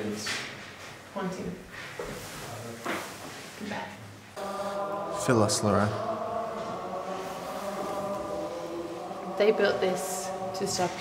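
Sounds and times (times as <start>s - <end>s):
choir-like drone: 4.4s - 11.0s.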